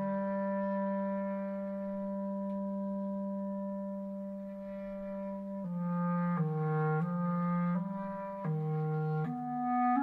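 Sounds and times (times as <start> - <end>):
clarinet long low note: 0.0 - 10.0.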